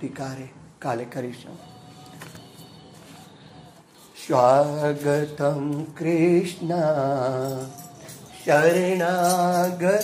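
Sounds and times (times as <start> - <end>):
background noise: 0.0 - 10.0
faint held musical tone: 1.1 - 10.0.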